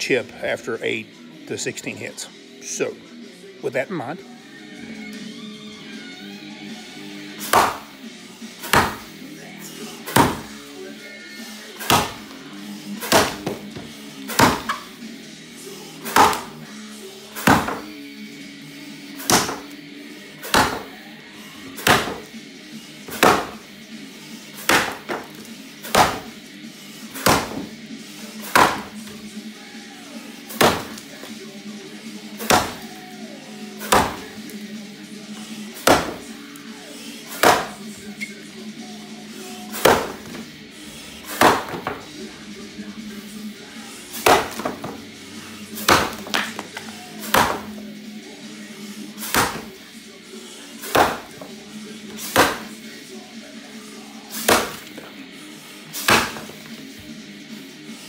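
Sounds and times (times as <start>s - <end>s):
axe chopping wood: 7.4s - 7.9s, 8.6s - 9.1s, 10.1s - 10.5s, 11.8s - 12.3s, 13.0s - 14.9s, 16.0s - 16.6s, 17.4s - 17.9s, 19.2s - 19.8s, 20.4s - 20.9s, 21.8s - 22.3s, 23.1s - 23.6s, 24.6s - 26.4s, 27.2s - 27.7s, 28.4s - 29.1s, 30.5s - 31.1s, 32.4s - 32.9s, 33.8s - 34.4s, 35.8s - 36.2s, 37.4s - 37.8s, 39.7s - 40.5s, 41.3s - 42.1s, 44.2s - 45.0s, 45.8s - 47.8s, 49.2s - 49.7s, 50.9s - 51.5s, 52.2s - 52.7s, 54.4s - 55.0s, 56.0s - 56.7s.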